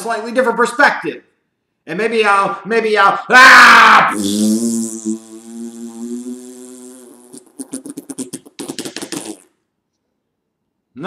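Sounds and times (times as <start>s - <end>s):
man making muffled vocal tone: 4.0s - 9.4s
sputtering lip pops: 4.1s - 9.6s.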